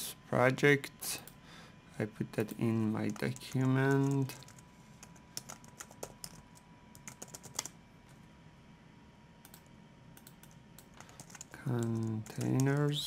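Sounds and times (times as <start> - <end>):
typing on computer keyboard: 3.1 - 7.7, 10.2 - 12.8.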